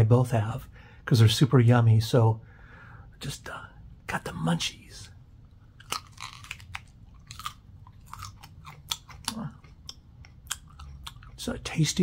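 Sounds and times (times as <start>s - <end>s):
crisp chewing crunches: 5.7s - 12.0s.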